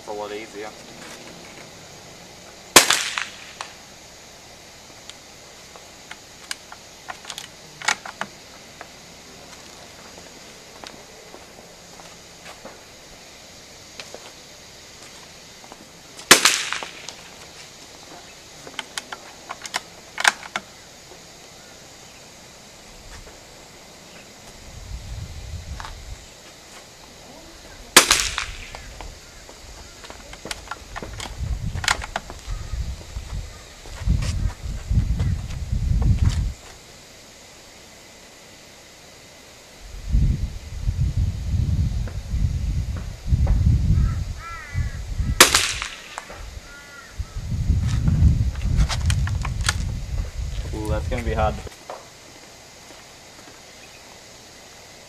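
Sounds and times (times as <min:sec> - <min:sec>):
rifle shots with echo: 0:02.8 - 0:03.6, 0:16.3 - 0:17.1, 0:28.0 - 0:28.8, 0:45.4 - 0:46.2.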